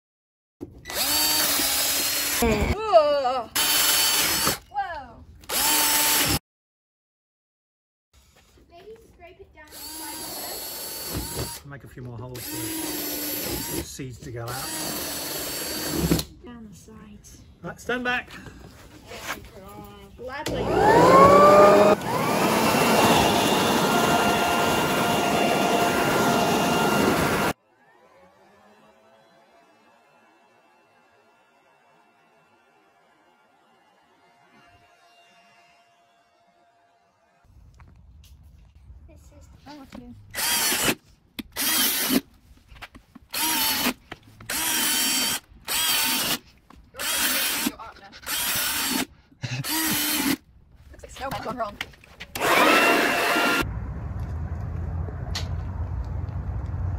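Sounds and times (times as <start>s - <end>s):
cordless drill whining: 0.8s - 2.7s, 3.6s - 4.7s, 5.4s - 6.4s, 9.7s - 11.6s, 12.4s - 13.9s, 14.5s - 16.3s, 20.4s - 27.6s, 40.3s - 42.2s, 43.3s - 50.4s, 52.3s - 53.6s
leaf blower high whine: 20.5s - 30.9s, 52.4s - 53.6s.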